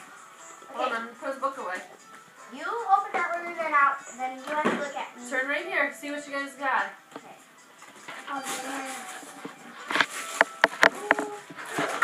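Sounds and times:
wrapping paper tearing: 8.3s - 12.0s.

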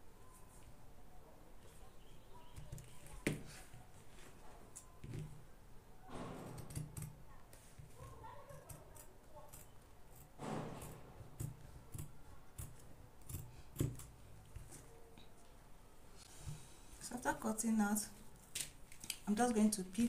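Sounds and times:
scissors snipping fabric: 8.5s - 14.1s.

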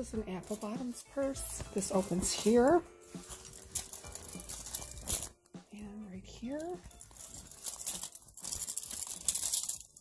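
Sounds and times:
purse rustling and clicking: 0.3s - 5.6s, 6.5s - 10.0s.

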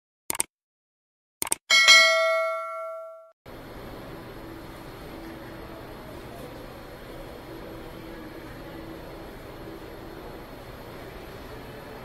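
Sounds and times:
quick clicks: 0.3s - 0.5s, 1.4s - 1.6s
bright bell ding: 1.7s - 3.3s
busy indoor hall noise: 3.5s - 12.0s.

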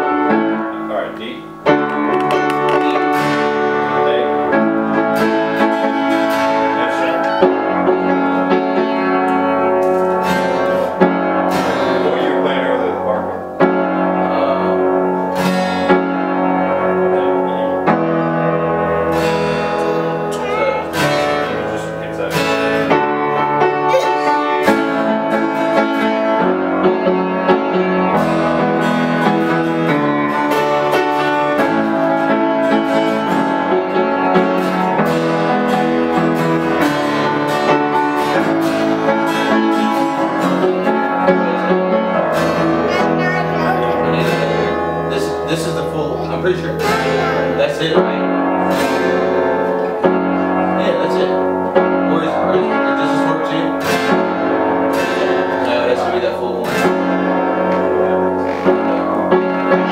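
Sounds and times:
acoustic guitar strumming: 0.0s - 59.9s
upright piano chords: 0.0s - 59.9s.

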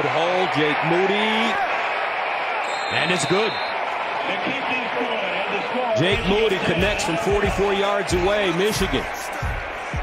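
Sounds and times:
stadium crowd hubbub: 0.0s - 10.0s.

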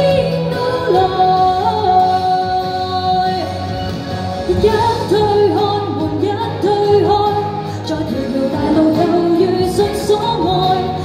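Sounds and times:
pop backing music: 0.0s - 11.0s
woman singing into microphone: 0.0s - 11.0s.

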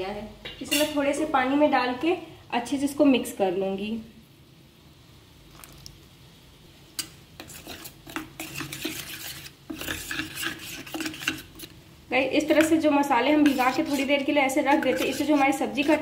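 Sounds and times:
spoon clinking on steel bowl: 0.7s - 1.0s, 14.7s - 16.0s
spoon scraping inside steel bowl: 0.7s - 1.0s, 7.0s - 11.8s, 12.4s - 16.0s.

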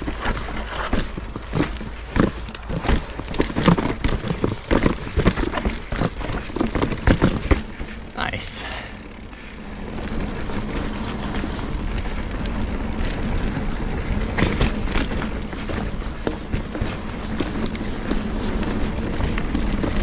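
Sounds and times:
bike rattling over rocks: 0.0s - 20.0s
tyres rolling: 0.0s - 20.0s.

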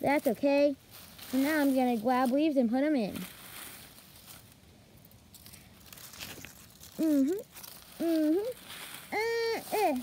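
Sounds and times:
dry leaves crinkling: 0.0s - 10.0s.

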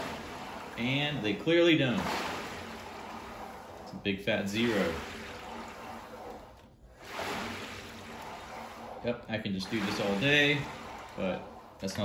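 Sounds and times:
rower paddle churning water: 0.0s - 12.0s.

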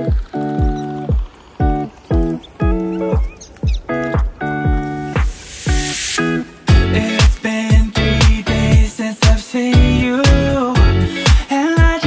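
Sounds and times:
kick drum beat: 0.1s - 5.9s, 6.7s - 12.0s.

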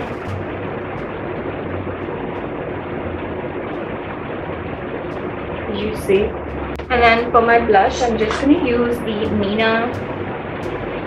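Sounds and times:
electric fan running: 0.0s - 11.0s.

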